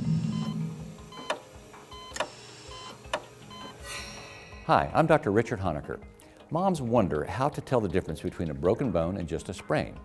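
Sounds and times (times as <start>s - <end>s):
short electronic beeps: 0.1s - 1.4s.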